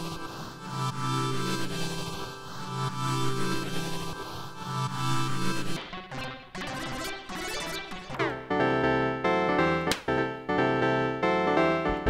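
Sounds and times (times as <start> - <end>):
sustained synth chords: 0.1 - 11.9.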